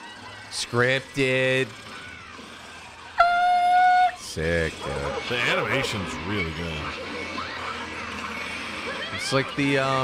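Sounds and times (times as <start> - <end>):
loud steady horn tone: 3.2 - 4.2.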